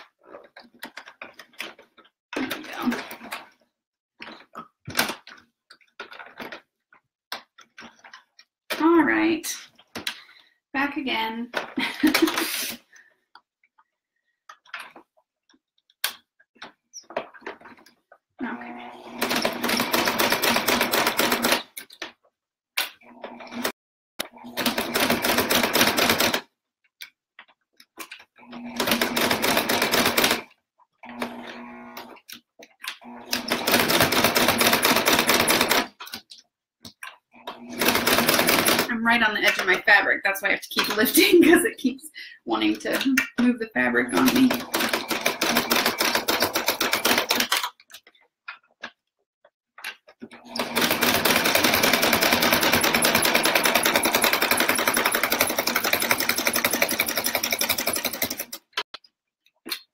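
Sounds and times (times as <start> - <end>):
sewing machine motor hum: 18.4 - 21.8, 22.9 - 26.4, 28.4 - 32.3, 32.9 - 36.0, 37.3 - 39.0, 44.1 - 47.6, 50.2 - 58.8.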